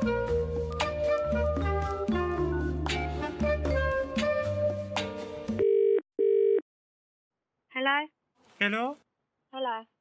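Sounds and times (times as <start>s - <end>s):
background music: 0.0s - 5.7s
telephone ringback tone: 5.6s - 6.6s.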